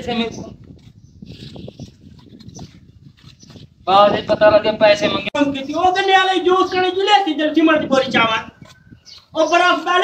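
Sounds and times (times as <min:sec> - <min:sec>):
trowel scraping mortar on brick: 0:00.6 - 0:03.8.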